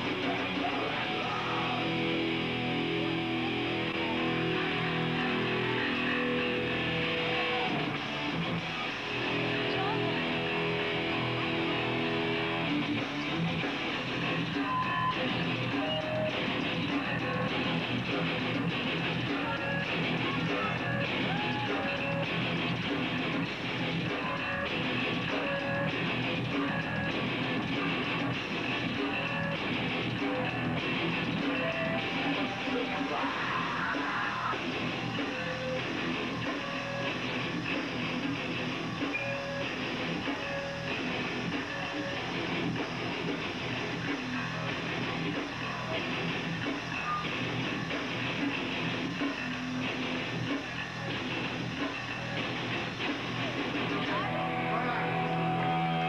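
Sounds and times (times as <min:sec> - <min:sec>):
bass guitar: 0:00.0 - 0:56.0
distorted electric guitar: 0:00.0 - 0:56.0
drums: 0:00.0 - 0:56.0.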